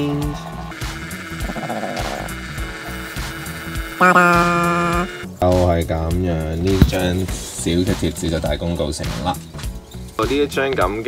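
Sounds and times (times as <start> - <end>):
background music: 0.0 - 11.0
thermal printer buzzing: 0.7 - 5.4.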